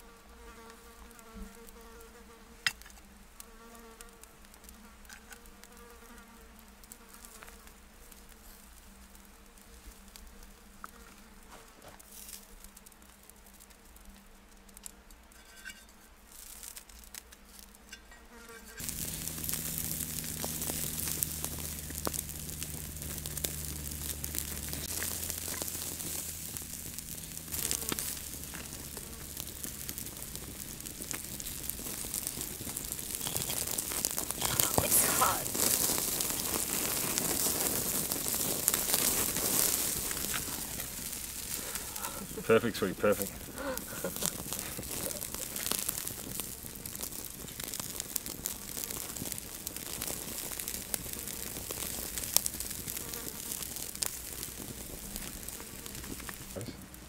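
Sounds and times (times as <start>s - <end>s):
campfire crackling and sizzling: 0.0s - 57.0s.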